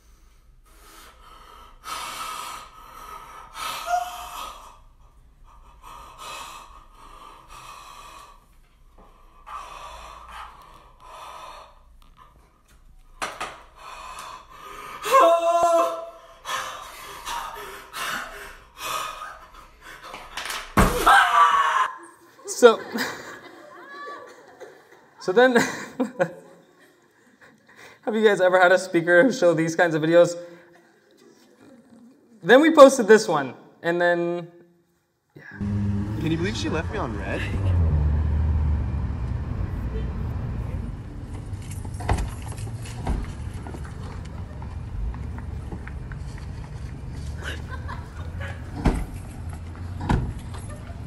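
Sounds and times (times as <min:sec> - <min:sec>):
car engine running: 0:35.6 - 0:51.0.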